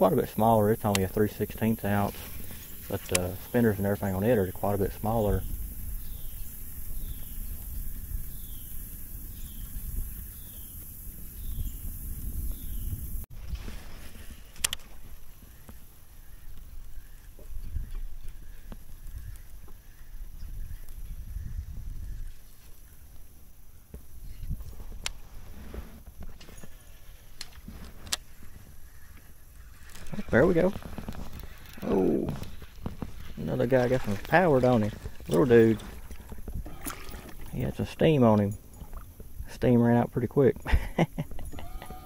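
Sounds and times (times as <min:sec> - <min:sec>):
water against kayak hull: 0:00.0 - 0:11.2, 0:24.2 - 0:39.7
wind buffeting microphone: 0:00.0 - 0:13.7, 0:16.3 - 0:23.0.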